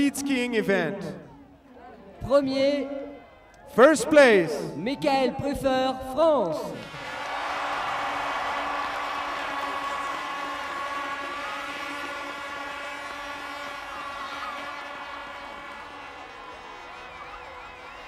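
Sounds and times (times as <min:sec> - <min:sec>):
crowd cheering and applauding: 0:06.8 - 0:18.0
steady tones: 0:07.5 - 0:17.9.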